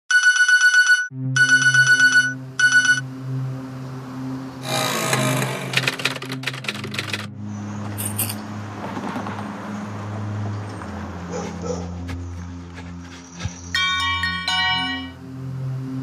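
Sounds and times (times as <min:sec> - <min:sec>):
alarm ringing with electronic pulses: 0:00.2 - 0:03.1
low music drone: 0:01.1 - 0:16.0.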